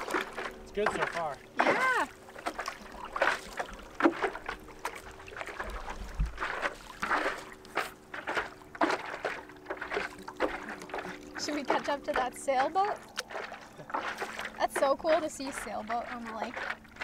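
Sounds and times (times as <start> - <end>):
paddle splashing in water: 0.0 - 17.0.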